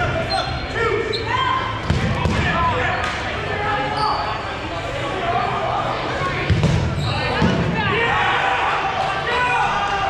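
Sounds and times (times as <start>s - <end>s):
voices in a hall: 0.0s - 10.0s
sneakers squeaking on hardwood floor: 6.6s - 7.5s.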